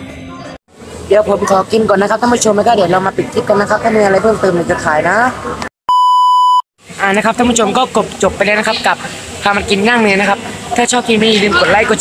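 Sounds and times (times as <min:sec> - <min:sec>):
high-pitched censor bleep: 0:05.9 - 0:06.6.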